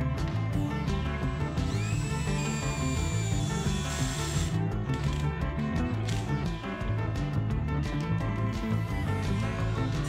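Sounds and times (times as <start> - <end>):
background music: 0.0 - 10.0
cordless drill whining: 1.5 - 5.3.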